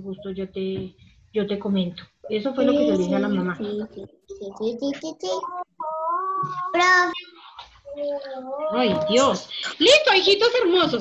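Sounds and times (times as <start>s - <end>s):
young child singing: 5.0s - 7.2s.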